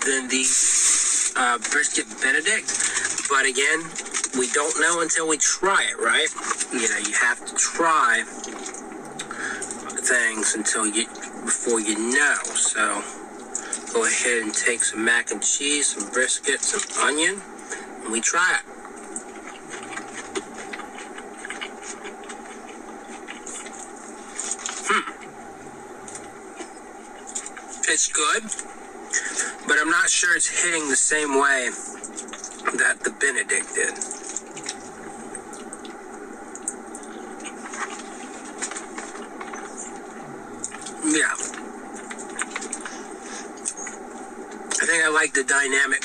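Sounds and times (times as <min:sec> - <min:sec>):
man chewing food: 0:00.5 - 0:11.7, 0:13.2 - 0:14.0, 0:18.7 - 0:27.8, 0:31.8 - 0:32.8, 0:33.9 - 0:44.8
wet mouth clicks: 0:19.3 - 0:25.2.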